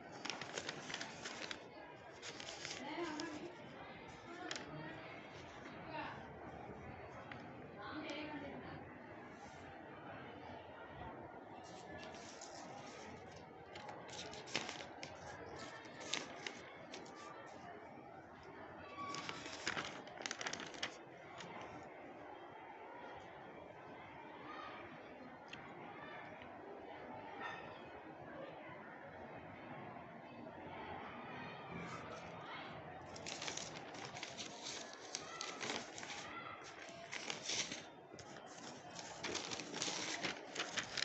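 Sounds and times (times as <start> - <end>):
paper crackling and rustling: 0.0 - 5.8, 11.6 - 17.6, 18.9 - 21.7, 33.1 - 41.0.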